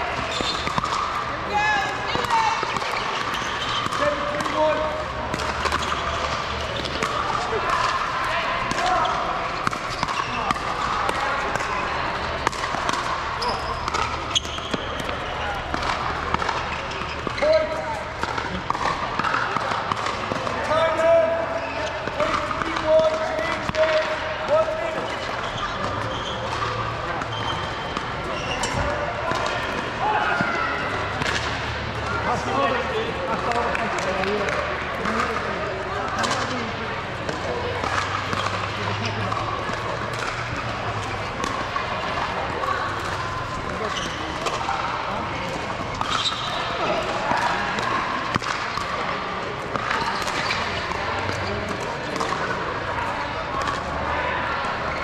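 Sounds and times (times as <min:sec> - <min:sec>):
players talking: 0:00.0 - 0:55.0.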